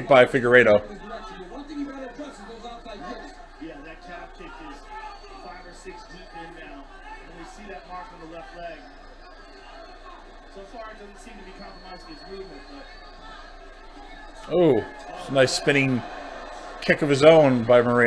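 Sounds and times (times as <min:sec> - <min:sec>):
commentators talking on television: 0:00.0 - 0:18.0.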